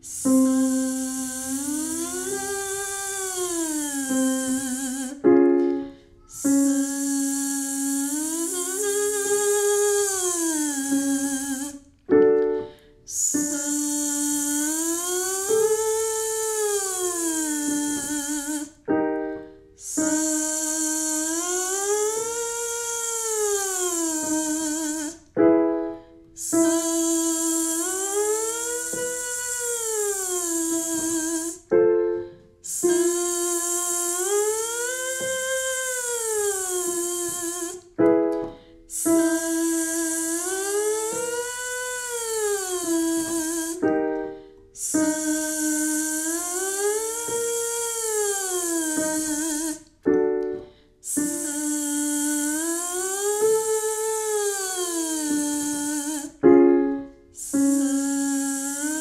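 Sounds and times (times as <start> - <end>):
piano cue notes: 0.0 - 59.0
woman buzzing vocal siren: 0.1 - 5.3, 6.3 - 11.8, 13.1 - 18.8, 19.8 - 25.3, 26.4 - 31.7, 32.7 - 37.8, 39.0 - 44.2, 44.8 - 49.9, 51.1 - 56.4, 57.5 - 59.0.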